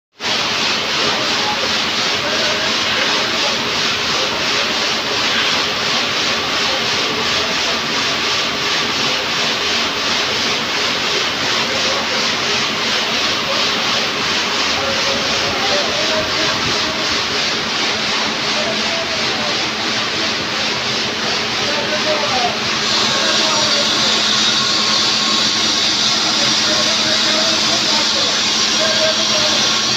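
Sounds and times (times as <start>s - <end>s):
factory machinery pulsing: 0.2s - 29.9s.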